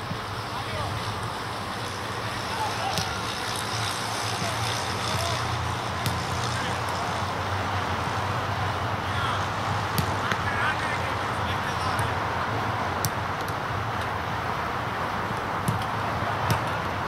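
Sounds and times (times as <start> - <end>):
players calling in distance: 0.0 - 17.0
ball kick thuds: 6.0 - 6.4, 9.9 - 10.4, 16.5 - 16.8.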